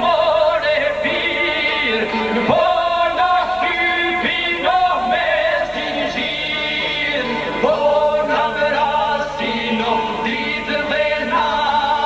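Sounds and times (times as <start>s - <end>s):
men singing folk song: 0.0s - 12.0s.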